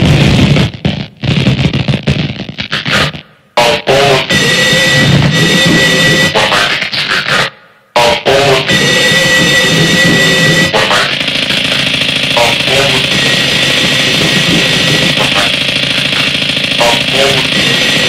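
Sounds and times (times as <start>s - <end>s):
harsh distorted noise music: 0.0s - 18.0s
steady high tones: 8.0s - 18.0s.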